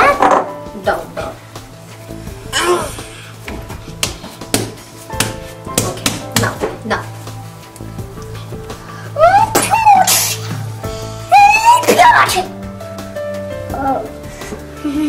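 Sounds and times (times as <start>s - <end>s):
background music: 0.0s - 15.0s
person crying out: 2.5s - 3.0s, 9.2s - 10.5s
dough slapped on countertop: 4.0s - 6.7s.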